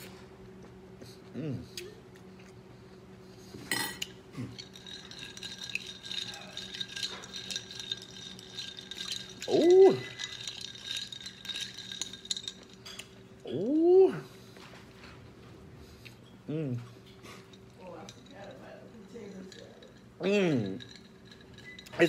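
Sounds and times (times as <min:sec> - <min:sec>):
ice cubes clinking in a glass: 0:03.8 - 0:13.1, 0:17.8 - 0:22.0.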